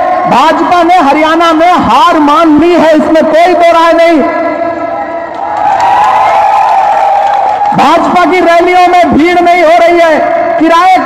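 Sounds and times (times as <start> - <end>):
crowd cheering and shouting: 4.6 - 8.4
people clapping: 5.3 - 8.1.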